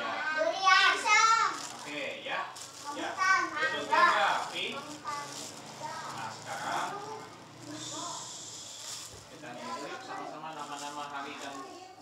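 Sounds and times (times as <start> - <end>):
young children talking and calling: 0.0 - 2.0, 2.6 - 12.0.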